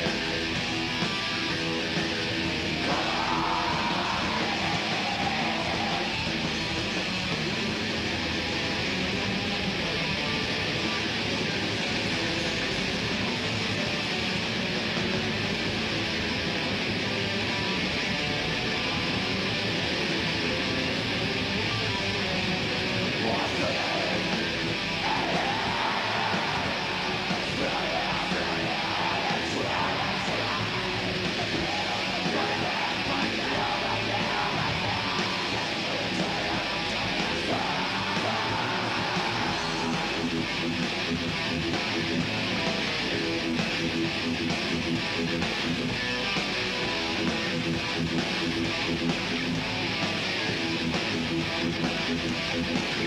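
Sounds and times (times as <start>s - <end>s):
metal band playing live: 0.0s - 53.0s
harsh shouted vocals: 1.8s - 7.0s, 23.1s - 40.8s.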